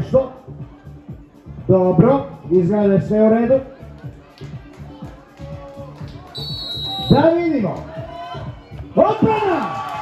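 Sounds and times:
background music with steady beat: 0.0s - 10.0s
referee's whistle blast: 6.4s - 7.4s.

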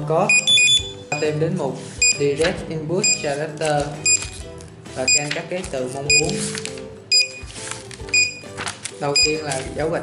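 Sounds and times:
background music: 0.0s - 10.0s
barcode scanner beeps: 0.3s - 1.2s, 2.0s - 2.4s, 3.0s - 3.3s, 4.0s - 4.4s, 5.1s - 5.3s, 6.1s - 6.4s, 7.1s - 7.5s, 8.1s - 8.5s, 9.1s - 9.6s.

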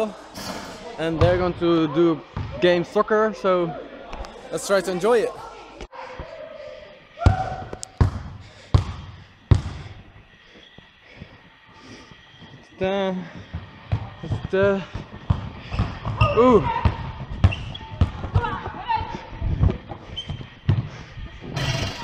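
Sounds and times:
basketball bouncing on wooden floor: 7.3s - 9.8s, 13.9s - 18.7s.

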